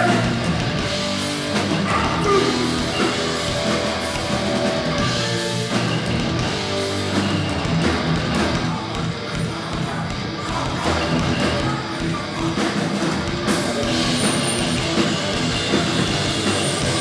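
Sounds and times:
punk band playing live: 0:00.0 - 0:17.0.

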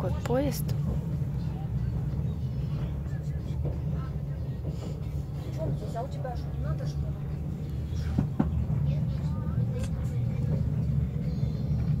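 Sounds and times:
train rumbling: 0:00.0 - 0:12.0.

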